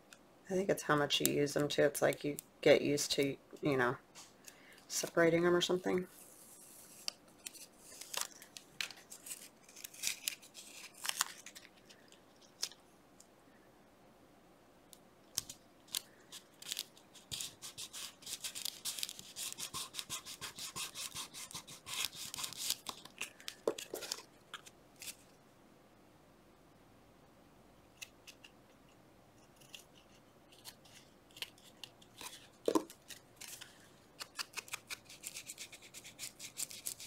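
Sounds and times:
playing cards clicking and rustling: 15.4 - 25.2, 29.6 - 37.0.

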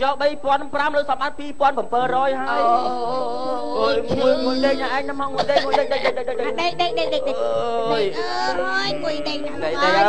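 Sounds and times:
high-pitched voice singing: 2.5 - 5.0.

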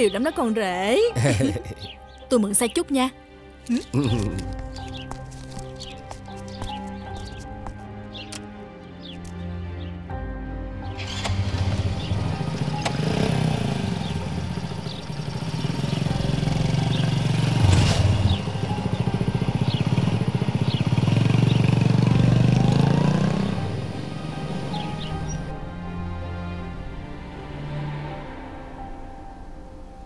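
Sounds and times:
background music: 0.0 - 30.0
motorbike engine starting and revving: 10.9 - 25.5.

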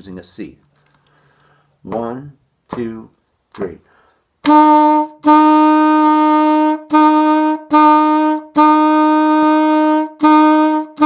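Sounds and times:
alto saxophone repeated note: 4.4 - 11.0.

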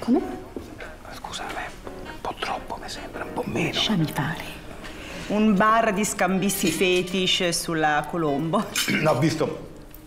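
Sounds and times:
person whispering: 0.8 - 3.8.

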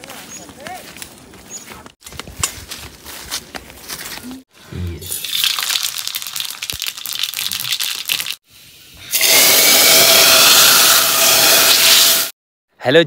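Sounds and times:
steam hissing and sizzling pot: 5.1 - 12.4
wood fire crackling: 5.2 - 8.4.

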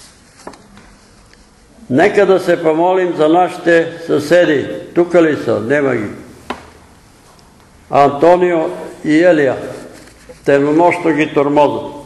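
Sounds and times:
man speaking: 1.9 - 6.3, 7.9 - 12.0.

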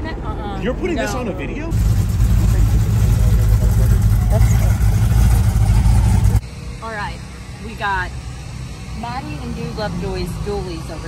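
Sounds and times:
truck engine deep rumble: 0.0 - 11.0.

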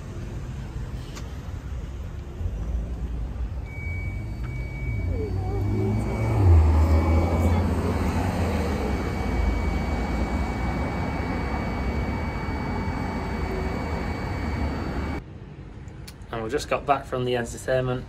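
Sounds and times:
low engine rumble: 0.0 - 15.2.

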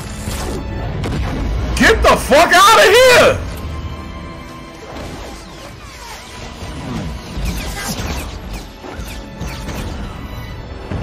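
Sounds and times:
orchestral score music: 0.0 - 7.4.

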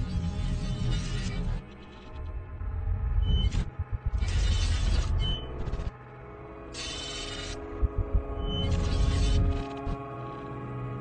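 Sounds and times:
sustained droning tone: 0.0 - 11.0
deep rumbling: 7.6 - 9.6.

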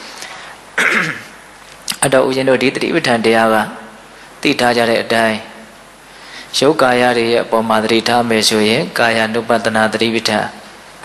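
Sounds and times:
man clearing throat: 0.8 - 1.4.

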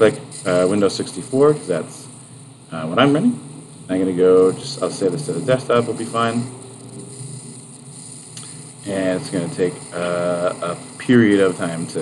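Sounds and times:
recording noise hiss: 0.0 - 12.0.

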